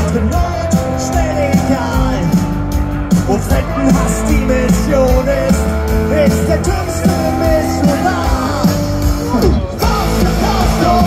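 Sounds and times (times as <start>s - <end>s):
live punk rock band: 0.0s - 11.0s.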